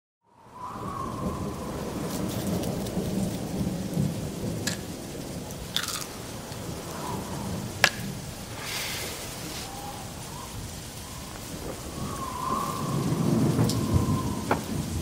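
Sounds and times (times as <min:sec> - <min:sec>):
rumbling thunder: 0:00.4 - 0:15.0
steady rain: 0:00.4 - 0:15.0
sharp thunder cracks: 0:00.8 - 0:15.0.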